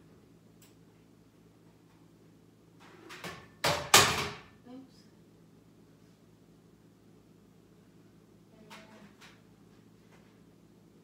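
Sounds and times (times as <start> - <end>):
household knocks and bangs: 3.1 - 4.5.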